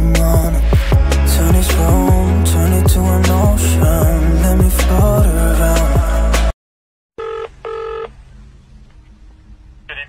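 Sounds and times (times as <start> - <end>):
pop music: 0.0 - 6.6
telephone ringing: 7.2 - 8.1.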